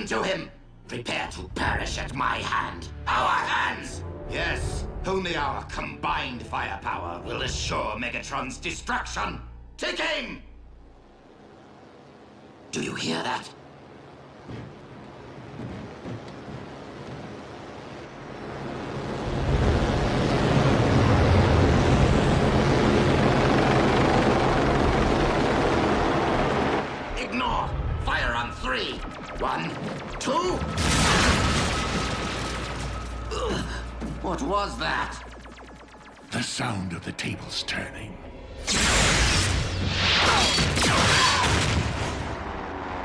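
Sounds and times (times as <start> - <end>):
cartoon rumble and roar: 38.6 - 43.0.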